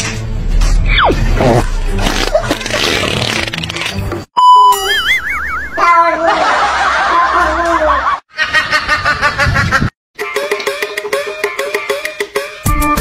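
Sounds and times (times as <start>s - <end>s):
snickering cartoon laugh: 1.4s - 3.2s, 6.2s - 9.9s
warbling wobbling tone: 4.7s - 6.0s.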